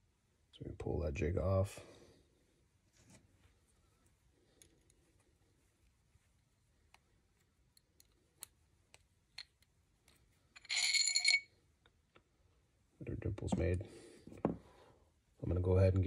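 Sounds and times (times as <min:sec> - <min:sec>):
small metallic clicks and taps: 0:06.9 - 0:10.2
metallic ringing rattle: 0:10.6 - 0:11.4.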